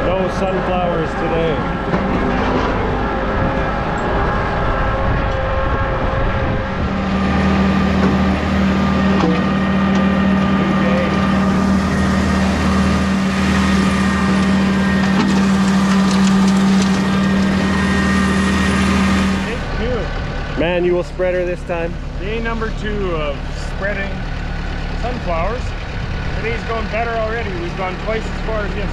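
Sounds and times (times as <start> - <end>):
tractor engine running: 0.0 - 28.9.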